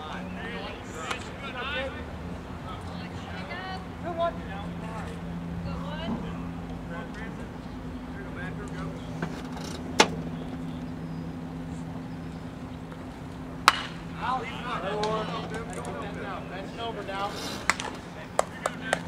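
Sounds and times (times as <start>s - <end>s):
low two-tone hum: 0.0s - 19.0s
voices chattering: 0.0s - 19.0s
baseball smacking into leather mitt: 13.6s - 14.0s.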